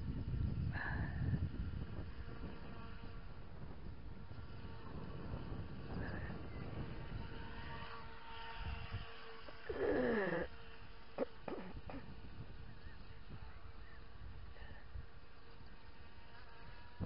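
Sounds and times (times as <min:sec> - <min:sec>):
model boat motor whine: 0:00.0 - 0:17.0.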